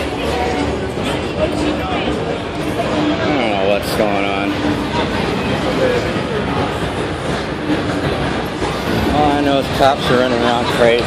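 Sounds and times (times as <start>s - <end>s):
crowd voices: 0.0s - 11.0s
rumbling street noise: 0.0s - 11.0s.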